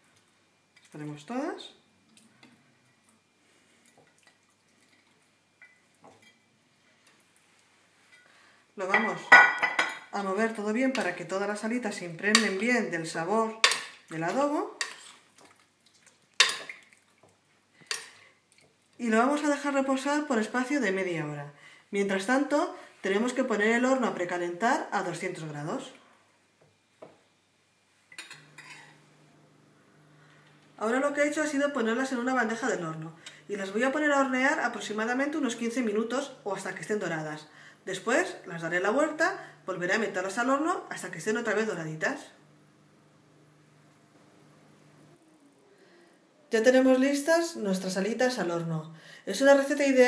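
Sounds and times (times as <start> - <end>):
soft wet sounds: 1.9 - 8.5, 14.8 - 19.0
utensils clinking on dishware: 28.2 - 29.0.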